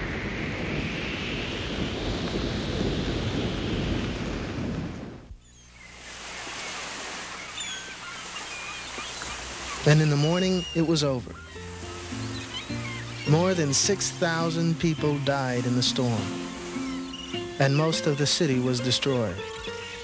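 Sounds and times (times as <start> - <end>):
waves crashing: 0.0 - 5.2, 5.9 - 20.0
wind: 0.0 - 20.0.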